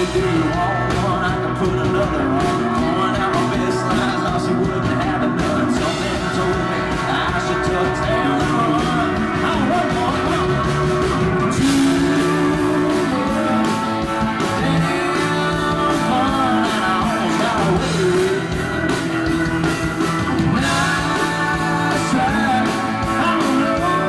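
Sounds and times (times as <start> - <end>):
live country band playing: 0.0 - 24.0.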